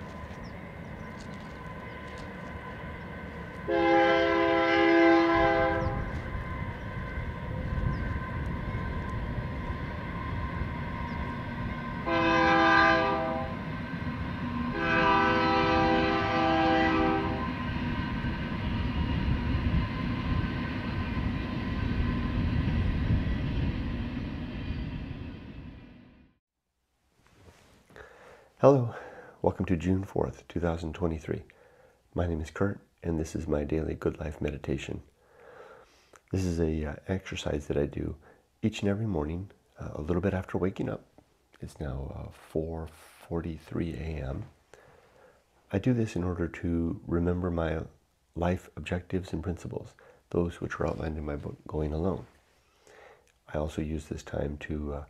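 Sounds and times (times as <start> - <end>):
passing train rumble: 0.0 - 26.4
train horn blasts: 3.6 - 13.9, 14.6 - 18.2.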